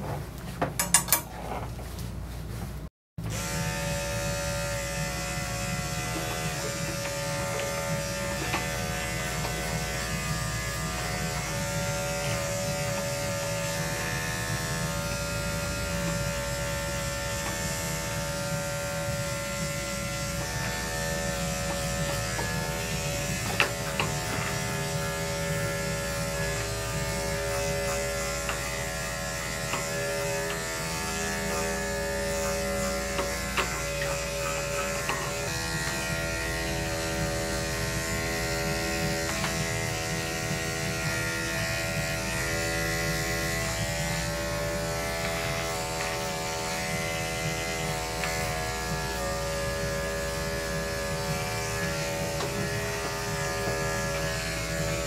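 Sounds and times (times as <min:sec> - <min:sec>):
electric clippers buzzing: 0:03.2 - 0:55.0.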